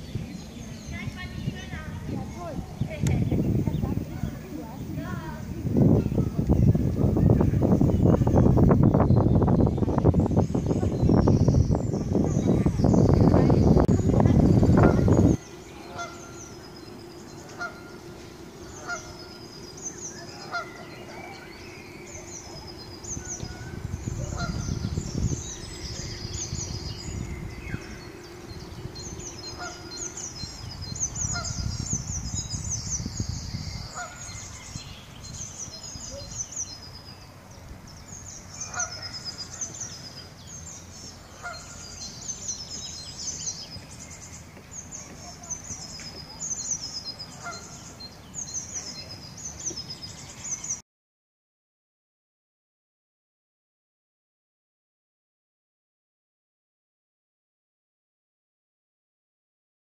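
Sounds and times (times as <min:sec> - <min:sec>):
songbirds chirping: 0:00.0 - 0:50.8
wind rumble on microphone: 0:00.0 - 0:50.8
geese honking: 0:14.0 - 0:16.7, 0:17.3 - 0:22.6, 0:23.2 - 0:25.3, 0:29.5 - 0:30.4, 0:33.9 - 0:34.3, 0:38.6 - 0:39.4, 0:41.3 - 0:41.9, 0:47.4 - 0:47.8.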